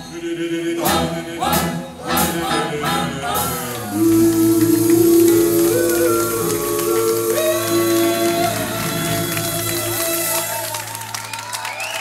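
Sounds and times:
vocal harmony group singing: 0.0s - 11.0s
band playing: 0.0s - 11.9s.

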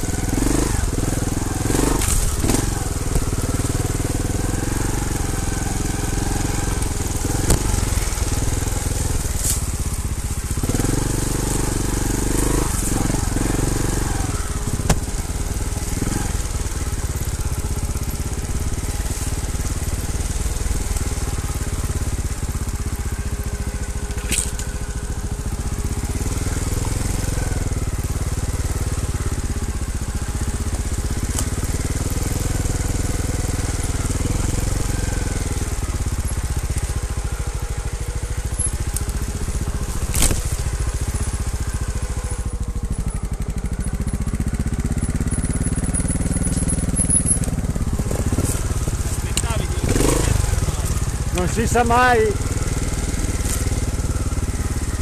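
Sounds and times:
motorcycle engine low revs: 0.0s - 55.0s
tyres crunching leaves and twigs: 0.0s - 55.0s.

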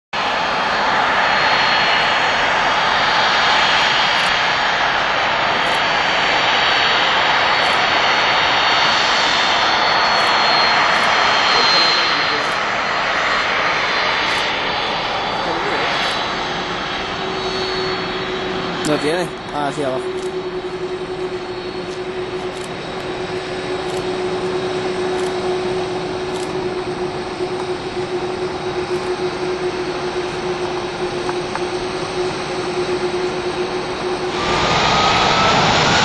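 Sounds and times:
jet engines running: 0.2s - 36.0s.

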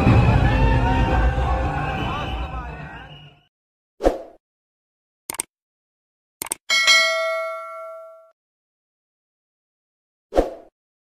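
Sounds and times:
bell-like ding: 6.7s - 8.4s.

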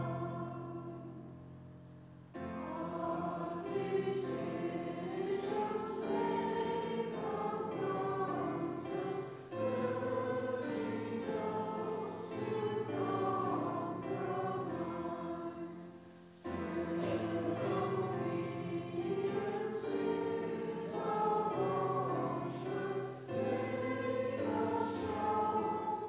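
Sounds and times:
congregation singing a hymn: 0.0s - 26.0s.

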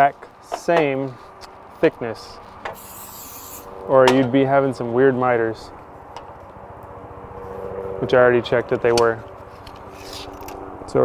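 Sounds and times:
engine droning: 0.0s - 11.0s.

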